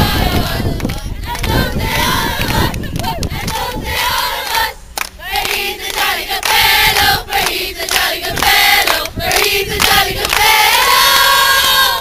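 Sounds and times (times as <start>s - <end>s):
crowd chanting in unison: 0.0s - 12.0s
hand claps: 5.0s - 10.5s.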